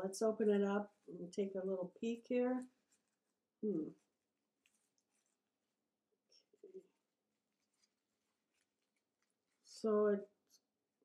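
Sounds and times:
paper flower rustling: 0:00.8 - 0:10.8.

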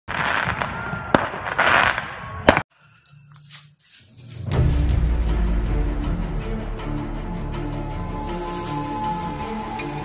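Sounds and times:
firework bangs: 0:00.1 - 0:02.7.

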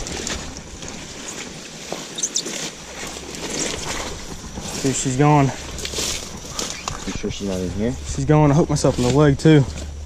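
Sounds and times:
leaves and stems rustling: 0:00.0 - 0:10.0.

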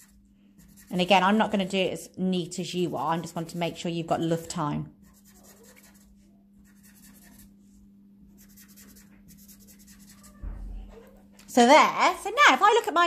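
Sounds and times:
marker scribbling on paper: 0:00.0 - 0:01.3, 0:05.0 - 0:07.8, 0:08.4 - 0:10.4
steady low hum: 0:00.0 - 0:13.0.

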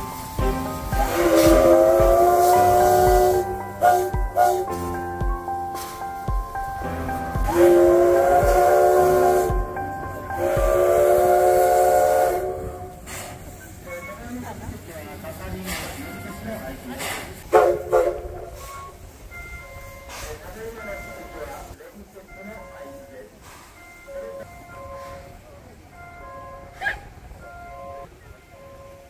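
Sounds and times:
steam whistle blasts: 0:00.0 - 0:06.3, 0:07.2 - 0:14.1, 0:17.4 - 0:19.2
steam hissing: 0:00.0 - 0:21.8, 0:22.8 - 0:25.8.

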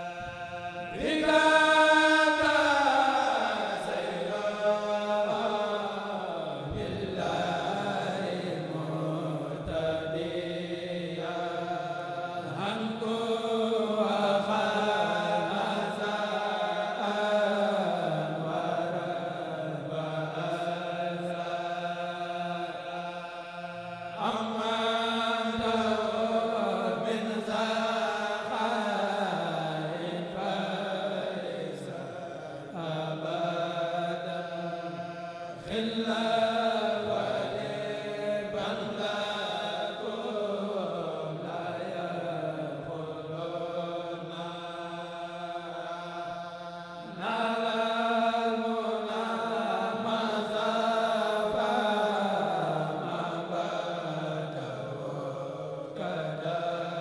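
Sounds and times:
men chanting in unison: 0:00.0 - 0:57.0.

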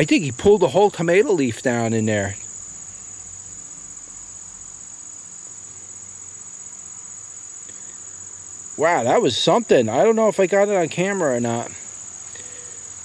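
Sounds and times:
crickets trilling: 0:00.0 - 0:13.0.

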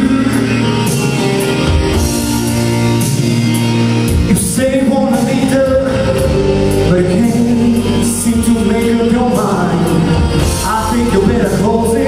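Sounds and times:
man singing into microphone: 0:00.0 - 0:00.9, 0:04.3 - 0:12.0
loud backing music: 0:00.0 - 0:12.0.

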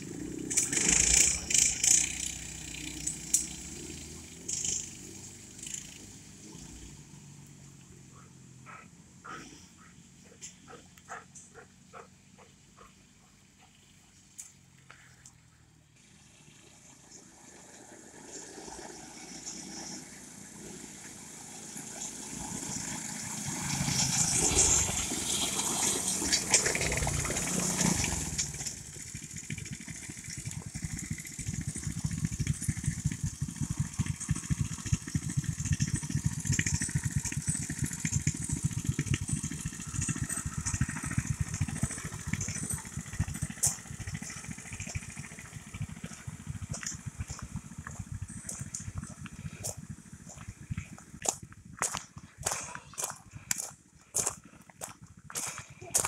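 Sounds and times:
off-road vehicle passing on gravel: 0:00.0 - 0:56.0
small engine running steadily: 0:00.0 - 0:56.0.

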